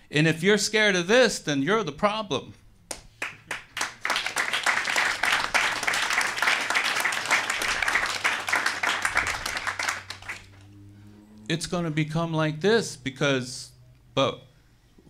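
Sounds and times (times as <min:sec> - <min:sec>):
audience applauding: 0:03.2 - 0:10.6.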